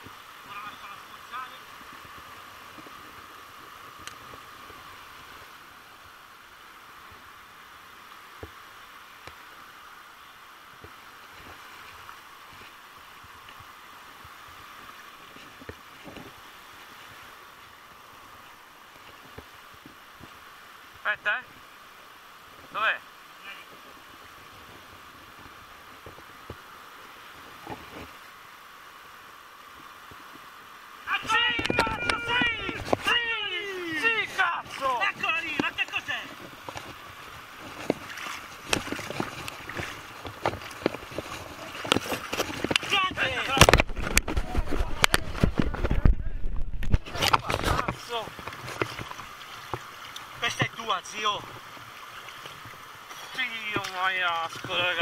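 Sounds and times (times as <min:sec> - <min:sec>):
river running: 0:00.0 - 0:55.0
water splashes: 0:00.0 - 0:55.0.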